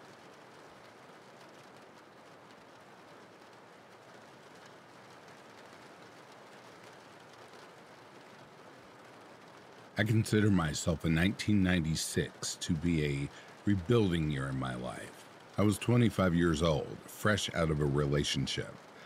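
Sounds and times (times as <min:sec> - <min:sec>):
soft steady rain: 0:00.0 - 0:19.0.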